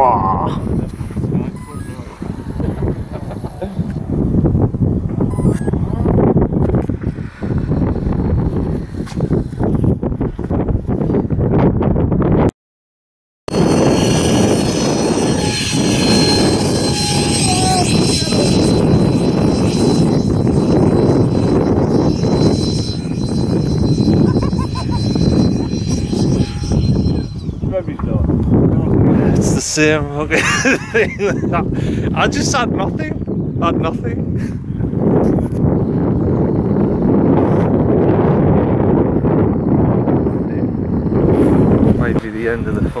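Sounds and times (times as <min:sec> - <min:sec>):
wind rumble on microphone: 0:00.0 - 0:12.5, 0:13.5 - 0:43.0
model plane motor whine: 0:13.5 - 0:27.7.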